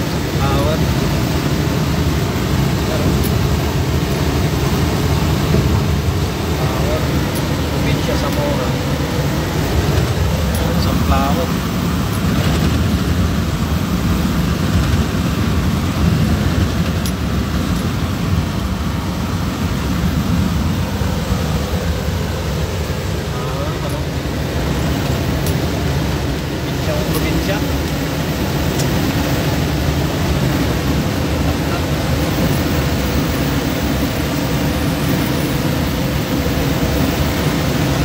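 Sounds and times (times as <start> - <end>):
truck engine and road noise: 0.0 - 38.0.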